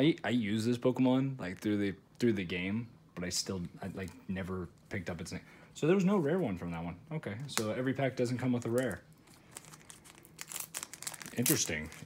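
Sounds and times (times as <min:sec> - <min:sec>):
foil wrapper crinkling: 0:08.4 - 0:12.0.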